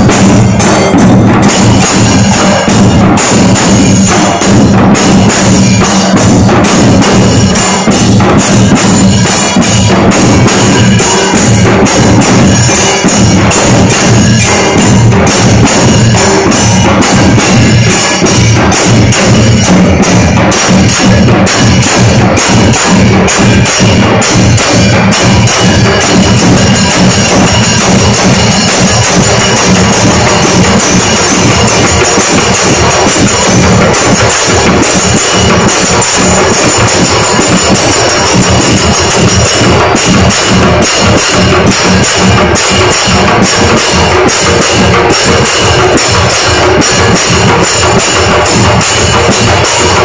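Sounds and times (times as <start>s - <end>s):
barrel drums beating: 0.0s - 50.0s
hand cymbals clashing: 0.0s - 50.0s.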